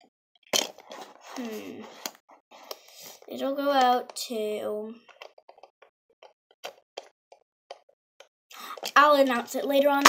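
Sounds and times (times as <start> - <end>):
person speaking: 1.3 - 2.1, 3.2 - 5.1.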